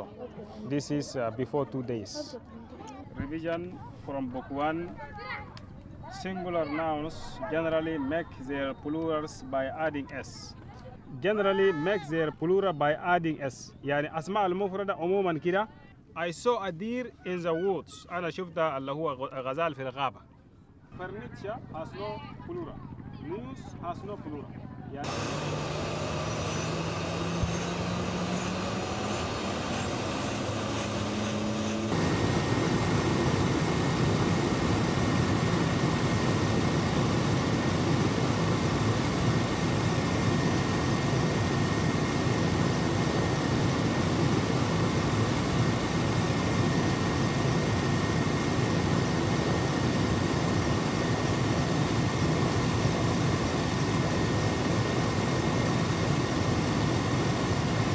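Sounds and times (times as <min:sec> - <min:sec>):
helicopter engine and rotor noise: 0:21.0 - 0:57.9
turbine whine rising in pitch: 0:25.0 - 0:57.9.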